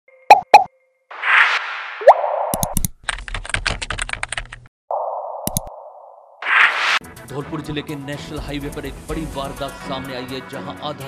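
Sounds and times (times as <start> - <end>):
whoosh with rising blip: 0.3 - 2.7, 4.9 - 7.0
rapid typing-like clicks: 2.6 - 4.7.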